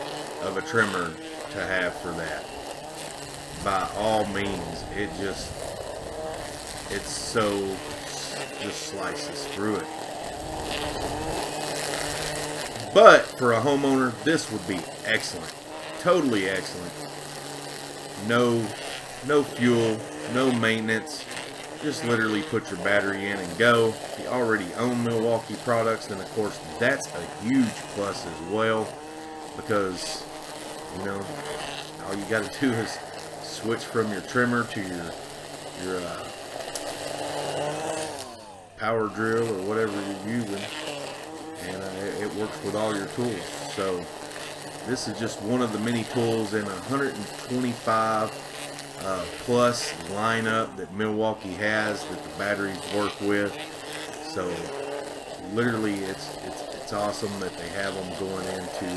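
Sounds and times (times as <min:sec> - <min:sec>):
string trimmer cutting grass: 0:00.0 - 0:58.9.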